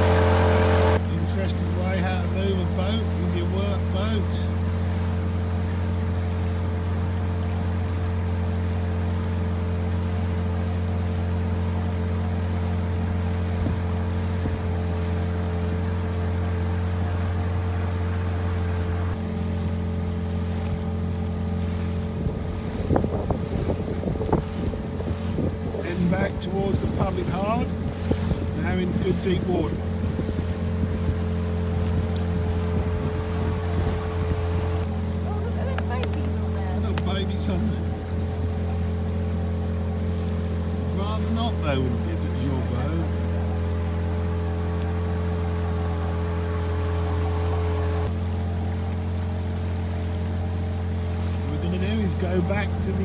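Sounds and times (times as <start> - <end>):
small outboard motor running: 0.0 - 53.0
wind buffeting microphone: 13.2 - 15.0, 20.2 - 41.0.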